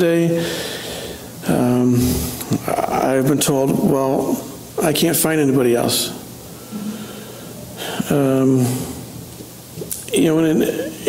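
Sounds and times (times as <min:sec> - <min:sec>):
man breathing in: 0:00.4 - 0:01.4, 0:06.5 - 0:09.1.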